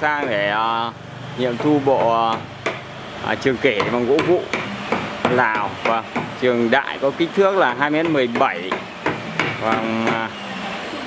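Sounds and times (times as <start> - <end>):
sharp knocks: 1.5 - 2.9, 3.7 - 6.5, 8.0 - 10.3.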